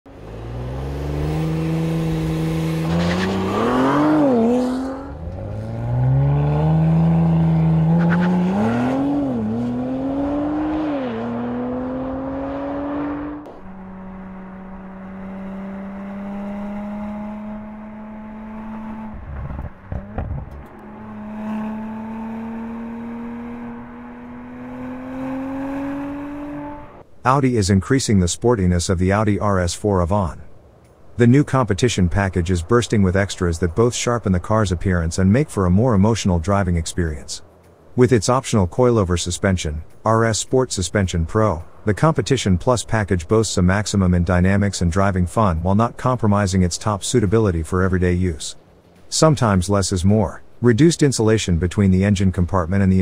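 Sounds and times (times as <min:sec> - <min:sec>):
car engine accelerating hard: 0:00.1 - 0:27.1.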